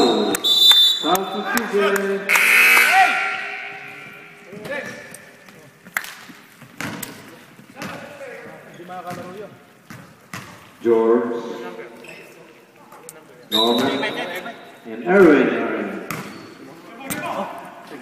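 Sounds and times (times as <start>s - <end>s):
players shouting and talking: 1.0s - 5.1s, 13.5s - 18.0s
basketball bouncing on wooden floor: 9.1s - 10.6s.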